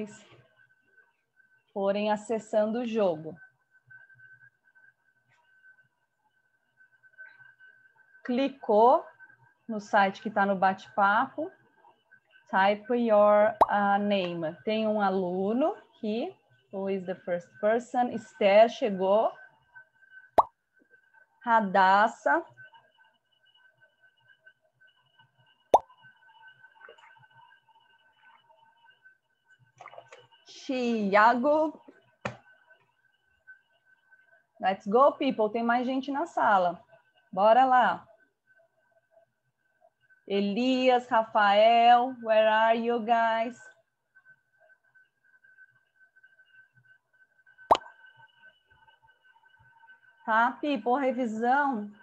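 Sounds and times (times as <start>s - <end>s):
faint steady tones: 0.0s - 52.0s.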